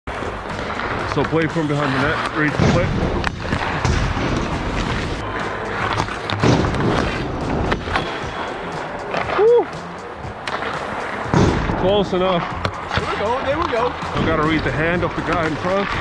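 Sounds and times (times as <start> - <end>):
skates scraping on ice: 0.1 - 16.0.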